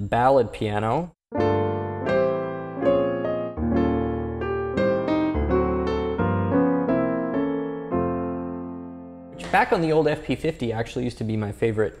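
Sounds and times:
mellow piano chords and melody: 1.3s - 9.9s.

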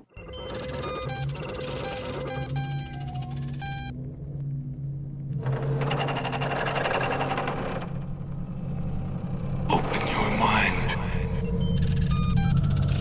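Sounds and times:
electronic beeps: 0.0s - 4.0s, 11.2s - 13.0s
rapid electronic buzzing: 0.0s - 4.2s, 11.2s - 13.0s
low electronic hum: 0.0s - 13.0s.

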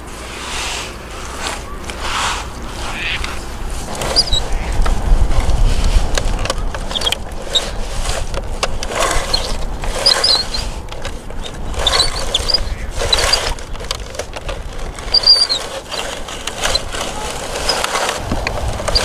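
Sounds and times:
toy bulldozer clattering through sand: 0.0s - 19.0s.

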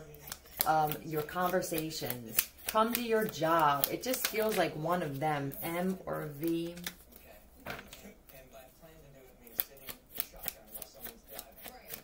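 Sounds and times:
deck of cards shuffled by hand: 0.2s - 8.0s, 9.5s - 12.0s
sharp card snap: 0.3s - 4.6s.

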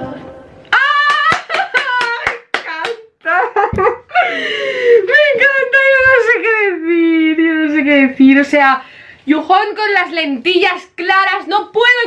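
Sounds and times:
woman's wavering cry of delight: 0.7s - 1.8s
hands clapping: 0.7s - 3.2s
woman laughing: 3.2s - 5.2s.

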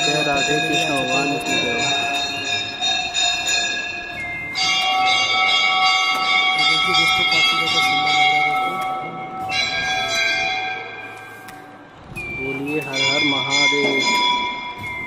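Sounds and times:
temple bells ringing: 0.0s - 11.3s, 12.4s - 15.0s.

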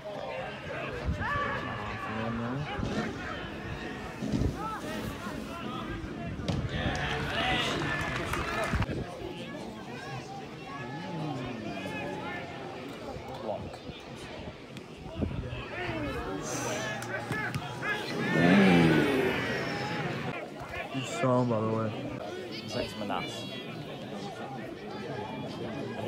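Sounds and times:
crowd shouting: 0.0s - 12.8s, 15.4s - 26.0s.

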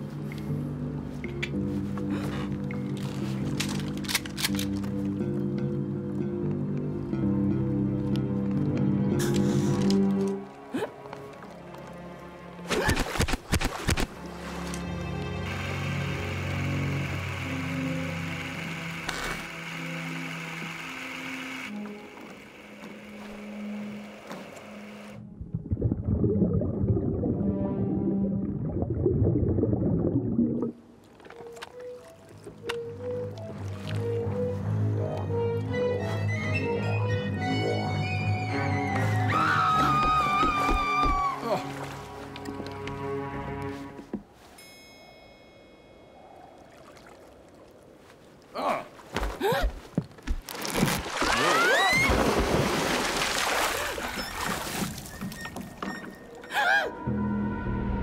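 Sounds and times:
quiet water sounds: 7.6s - 36.1s, 40.4s - 56.7s
deep underwater rumble: 25.2s - 30.8s.

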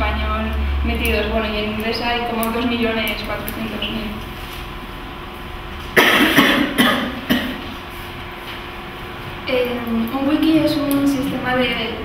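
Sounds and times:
woman coughing: 6.0s - 7.7s.

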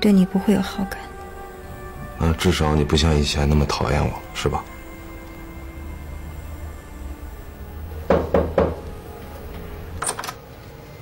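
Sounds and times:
knocks on wooden door: 8.1s - 8.8s.

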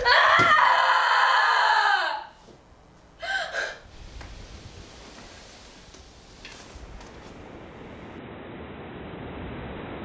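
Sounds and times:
young woman screaming: 0.0s - 2.3s.

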